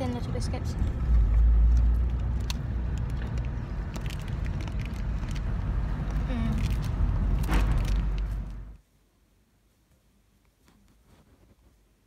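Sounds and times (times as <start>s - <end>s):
crunching snack bar: 1.8s - 8.7s.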